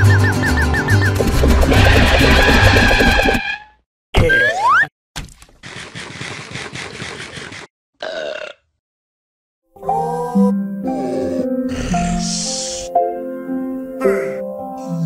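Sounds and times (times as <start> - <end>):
noisy sound effect: 1.0 - 3.6.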